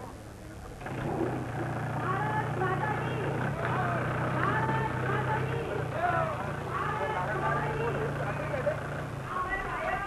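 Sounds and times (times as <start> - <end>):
car engine idling: 0.7 - 10.0
people talking: 2.0 - 10.0.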